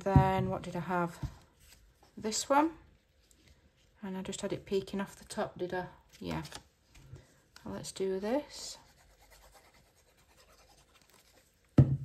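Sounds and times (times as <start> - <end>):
paper handling: 6.1 - 7.1.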